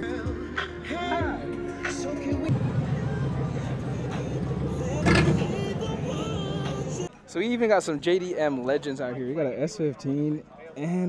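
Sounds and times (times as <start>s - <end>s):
pickup truck engine driving past: 2.5s - 7.1s
voices in background: 7.0s - 11.0s.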